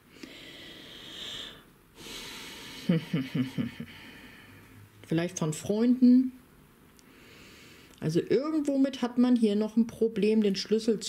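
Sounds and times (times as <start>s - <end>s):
woman breathing: 0.0s - 4.9s, 7.0s - 8.0s.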